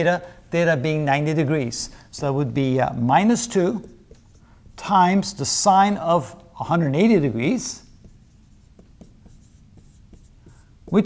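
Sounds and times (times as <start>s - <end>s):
marker writing on a whiteboard: 3.2s - 11.0s.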